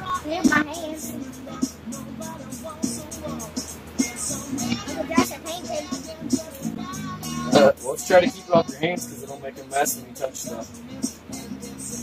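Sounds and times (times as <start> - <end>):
child's voice: 0.0 - 1.8, 4.6 - 10.6
background music: 0.0 - 12.0.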